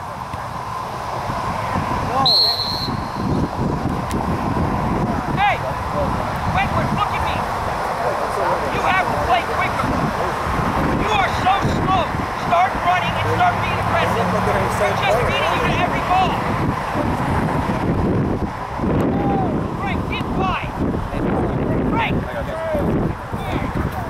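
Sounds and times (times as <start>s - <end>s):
wind buffeting microphone: 0.0s - 24.0s
distant voices calling out: 4.6s - 17.4s, 18.6s - 24.0s.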